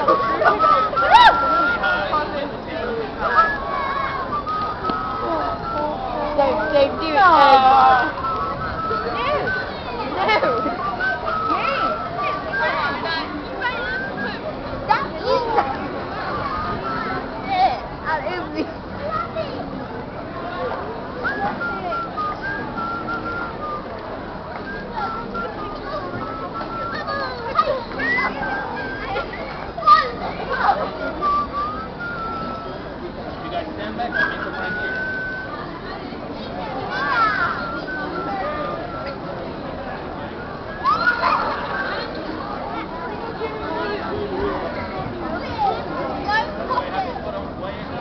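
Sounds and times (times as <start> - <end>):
children shouting and squealing: 0.0 - 2.3, 3.1 - 17.9, 24.6 - 32.8, 34.0 - 39.4, 40.4 - 47.3
crowd voices: 0.0 - 48.0
children shrieking: 0.6 - 1.8, 40.8 - 41.6.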